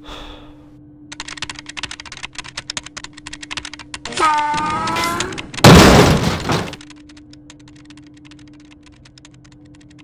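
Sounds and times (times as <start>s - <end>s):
low electrical hum: 0.0s - 10.0s
rapid typing on keyboard: 1.1s - 5.7s, 6.8s - 10.0s.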